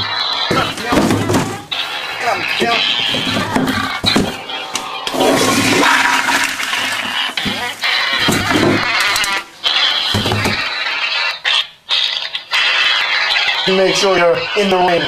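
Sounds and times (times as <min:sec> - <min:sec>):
toilet flushing: 0:05.1 - 0:08.8.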